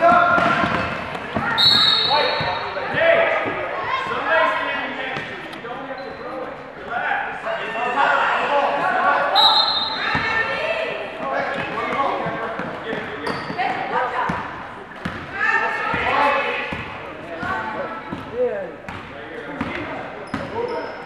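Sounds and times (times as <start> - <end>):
overlapping voices in a gym: 0.0 - 21.0
basketballs bouncing on wood floor: 11.6 - 15.3, 15.9 - 20.6.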